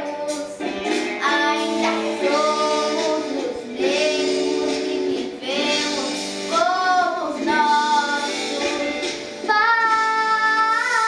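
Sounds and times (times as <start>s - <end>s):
girl singing: 0.0s - 11.0s
instrumental accompaniment: 0.0s - 11.0s.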